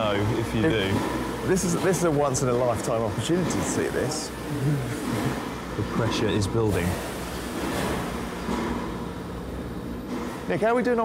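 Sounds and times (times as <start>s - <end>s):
water pump running: 0.0s - 11.0s.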